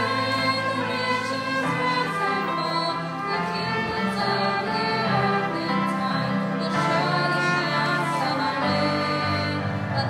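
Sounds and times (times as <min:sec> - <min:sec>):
group singing a hymn: 0:00.0 - 0:10.0
violins and cello: 0:00.0 - 0:10.0.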